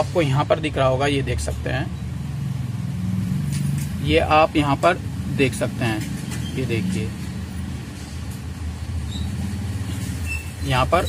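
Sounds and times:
engine rumble: 0:00.0 - 0:11.0.

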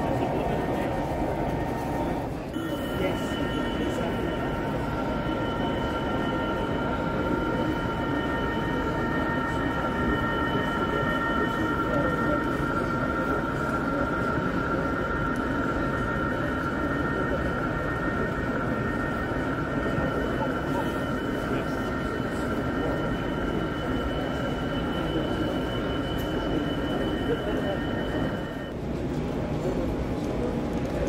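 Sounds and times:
crowd chatter: 0:00.0 - 0:31.0
model locomotive engine whine: 0:00.0 - 0:31.0.

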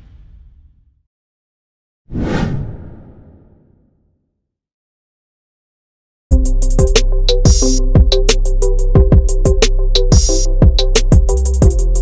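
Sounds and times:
whoosh with deep rumble: 0:02.1 - 0:03.7.

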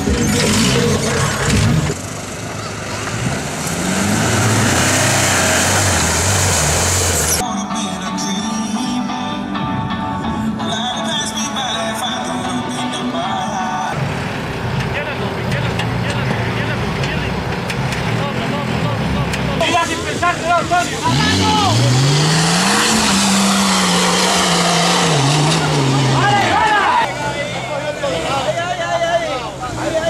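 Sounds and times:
off-road engine revving: 0:00.0 - 0:07.4, 0:13.9 - 0:30.0
spectators shouting: 0:20.7 - 0:28.2.

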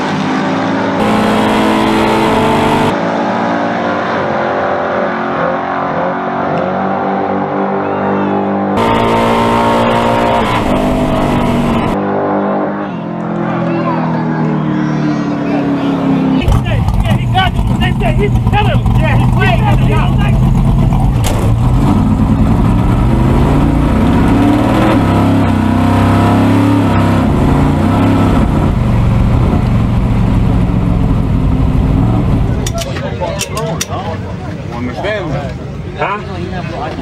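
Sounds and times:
drag car engine at full throttle: 0:00.0 - 0:35.5.

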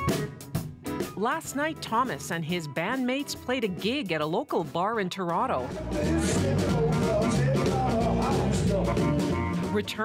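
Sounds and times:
bass: 0:00.0 - 0:10.0
drums: 0:00.0 - 0:10.0
electric guitar: 0:05.6 - 0:10.0.

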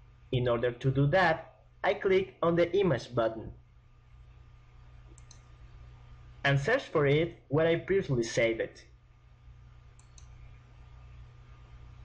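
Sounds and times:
low steady hum: 0:00.0 - 0:12.0
computer mouse clicks: 0:05.0 - 0:05.6, 0:09.9 - 0:10.6.

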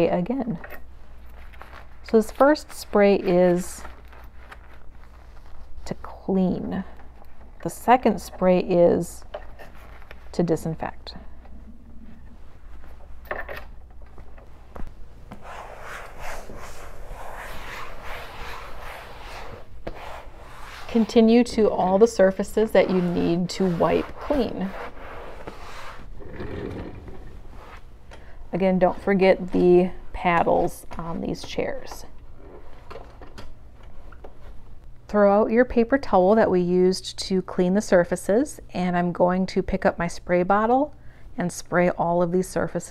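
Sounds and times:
paper towel wiping surfaces: 0:01.4 - 0:06.4, 0:15.3 - 0:26.2, 0:27.3 - 0:27.9.

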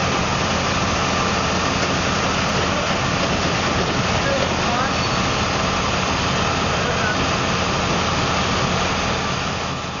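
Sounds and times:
street noise: 0:00.0 - 0:10.0
van engine idling: 0:00.0 - 0:10.0.

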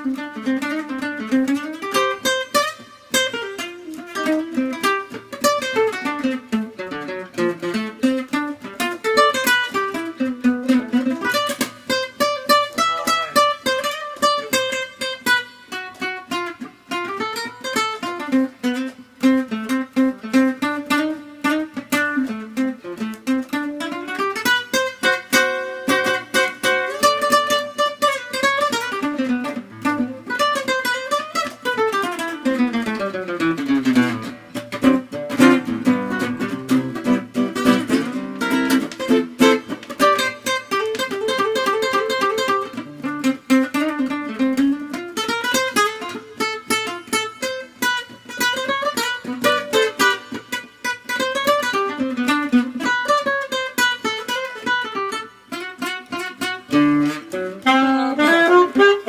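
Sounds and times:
fingerpicked classical guitar: 0:00.0 - 0:59.0.

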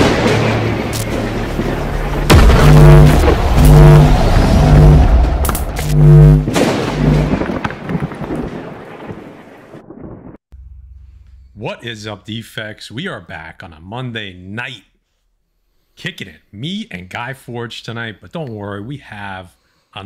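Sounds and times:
heavy booming hits: 0:00.0 - 0:07.9
cinematic music: 0:00.1 - 0:07.4
low held notes: 0:02.3 - 0:07.3, 0:10.6 - 0:12.1
thunder-like cracks: 0:06.5 - 0:10.4.

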